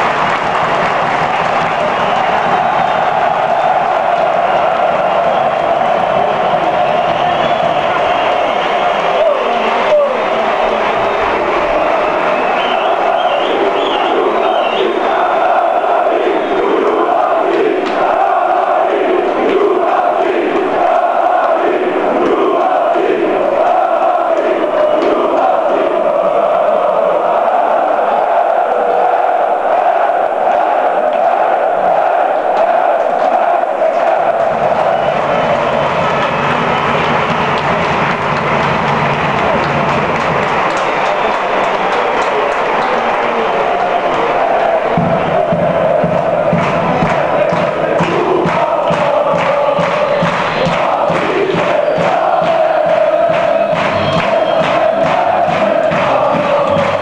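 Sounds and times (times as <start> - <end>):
crowd roar: 0.0 - 57.0
football crowd chanting: 0.0 - 57.0.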